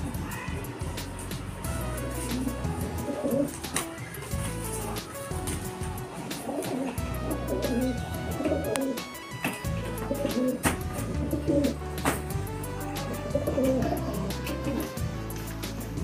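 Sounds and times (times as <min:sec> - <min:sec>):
background music with bass notes: 0:00.0 - 0:16.0
pigeons cooing: 0:01.6 - 0:16.0.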